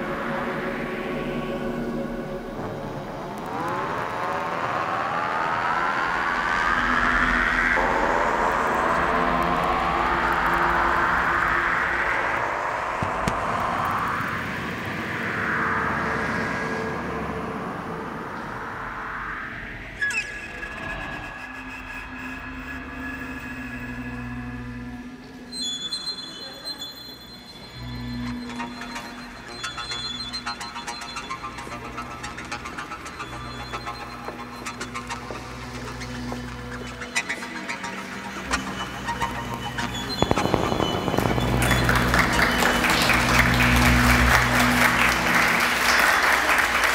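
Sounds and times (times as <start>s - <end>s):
dark ambient electronic music: 0.0s - 46.9s.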